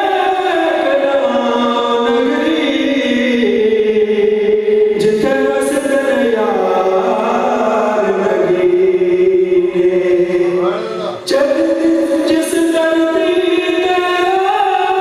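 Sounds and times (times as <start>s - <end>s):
man singing unaccompanied: 0.0s - 15.0s.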